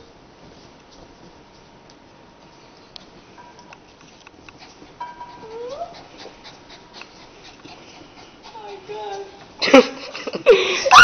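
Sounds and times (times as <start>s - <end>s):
small dog whimpering: 5.4s - 6.2s.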